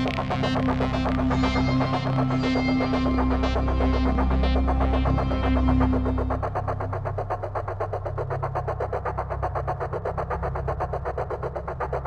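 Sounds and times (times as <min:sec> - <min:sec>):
pulsing electronic buzz: 0:00.0 - 0:12.0
steady low drone: 0:00.0 - 0:12.0.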